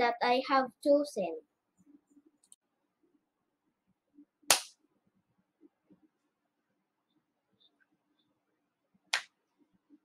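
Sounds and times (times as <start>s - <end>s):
sharp hand clap: 4.5s - 4.8s, 9.1s - 9.4s.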